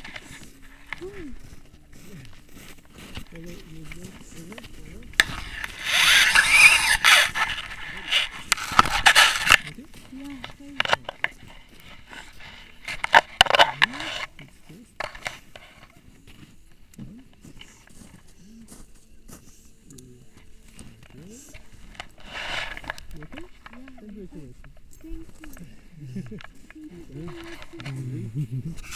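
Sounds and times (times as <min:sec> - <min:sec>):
paraglider rustling and scraping on snow: 0:00.0 - 0:19.7, 0:20.6 - 0:23.8
quiet voices talking: 0:00.0 - 0:28.9.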